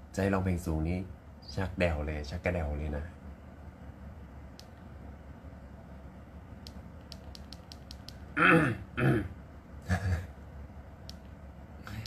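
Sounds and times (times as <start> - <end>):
man laughing: 9.8 - 10.4.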